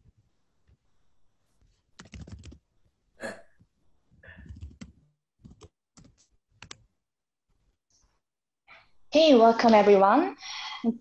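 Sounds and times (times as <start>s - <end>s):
computer keyboard clicks: 2.0s - 2.6s, 4.4s - 6.8s.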